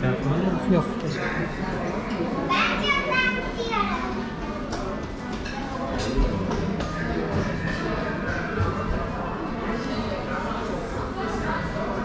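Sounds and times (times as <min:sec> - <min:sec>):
restaurant chatter: 0:00.0 - 0:12.0.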